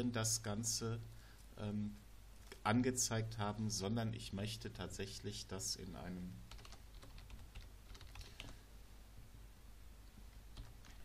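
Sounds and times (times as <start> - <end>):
typing on computer keyboard: 6.5 - 8.6, 10.5 - 11.0.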